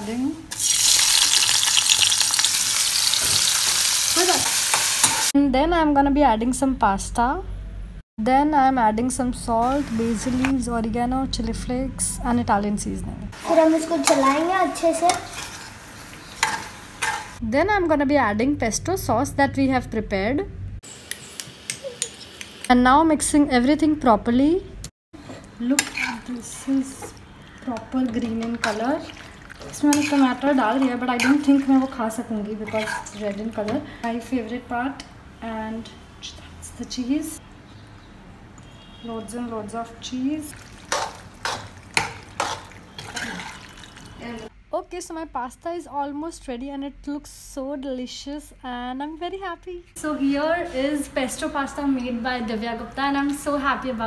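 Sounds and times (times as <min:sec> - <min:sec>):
spoon scraping in a metal pan: 0:15.1 - 0:17.4, 0:25.2 - 0:28.9, 0:29.6 - 0:31.9, 0:32.5 - 0:33.2
spoon stirring pasta in pan: 0:25.2 - 0:33.8, 0:40.5 - 0:44.1.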